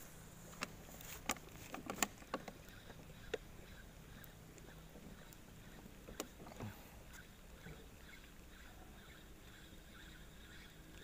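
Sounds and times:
fishing tackle handling noises: 0.5s - 3.5s.

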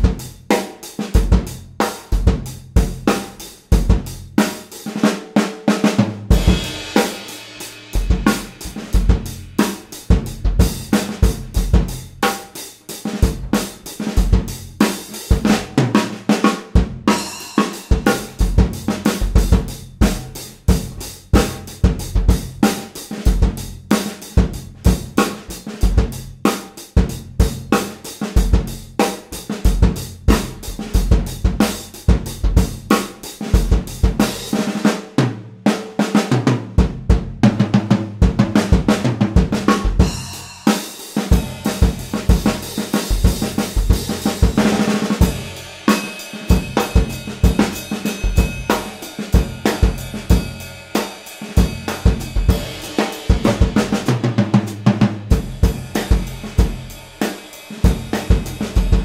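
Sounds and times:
drum kit groove: 0.0s - 59.0s.

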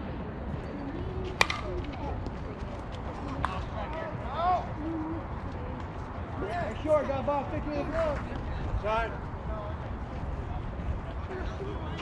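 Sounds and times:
bat hitting ball: 1.4s - 1.9s.

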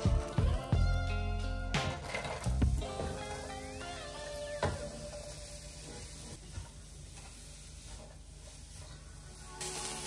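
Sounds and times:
background music with low beat: 0.0s - 5.0s.

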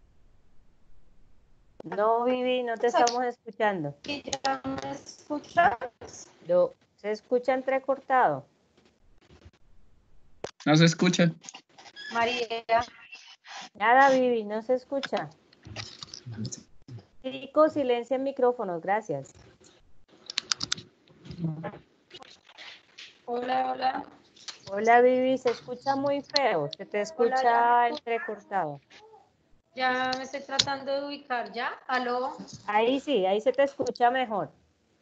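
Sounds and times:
choppy voice over video call: 1.8s - 8.4s, 10.6s - 16.6s, 17.3s - 19.4s, 20.3s - 29.2s, 29.8s - 34.5s
muffled voice: 10.7s - 11.3s, 15.1s - 16.6s, 21.3s - 21.8s, 25.4s - 28.6s
keyboard typing clicks: 20.3s - 20.8s.

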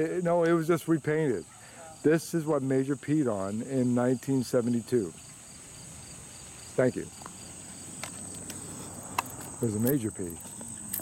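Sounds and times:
insect chorus drone: 0.0s - 11.0s.

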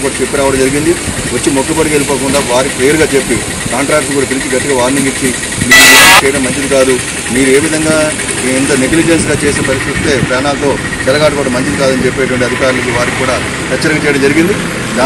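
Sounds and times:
loud rush of noise: 0.0s - 15.0s
man talking into microphone: 0.0s - 15.0s
vehicle engine running: 0.0s - 15.0s.

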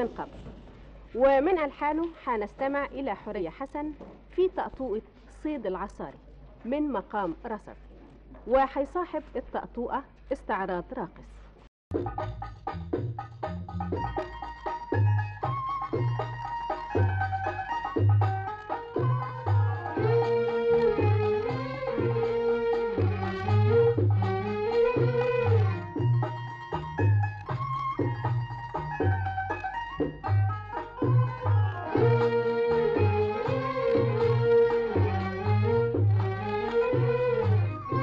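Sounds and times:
percussion beating brisk rhythm: 11.9s - 38.0s
pitched instrument notes: 11.9s - 38.0s.

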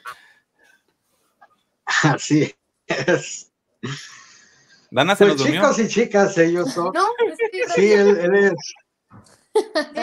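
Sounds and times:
person speaking: 4.9s - 5.9s.

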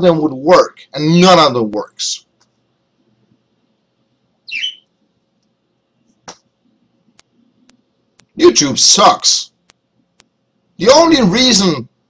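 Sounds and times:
bird chirp: 4.5s - 4.9s.

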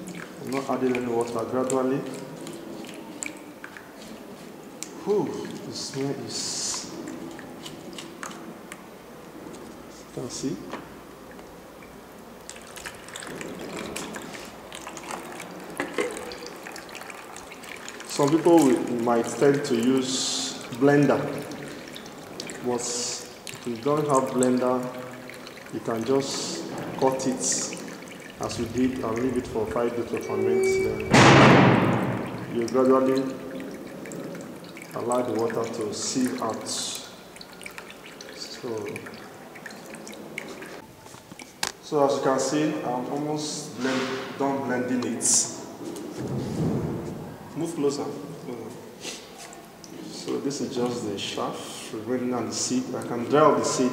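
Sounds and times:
hands squelching wet pulp: 0.0s - 10.6s, 11.2s - 41.9s, 47.5s - 53.9s
juice dripping and splashing: 0.0s - 53.9s.

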